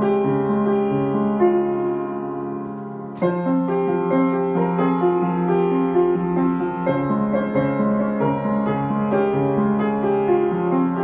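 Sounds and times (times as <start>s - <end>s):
solo piano playing: 0.0s - 11.0s.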